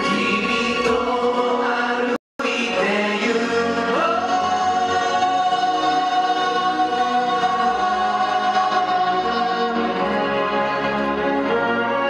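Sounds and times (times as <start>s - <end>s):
choir singing held chords: 0.0s - 12.0s
orchestral accompaniment: 6.7s - 12.0s.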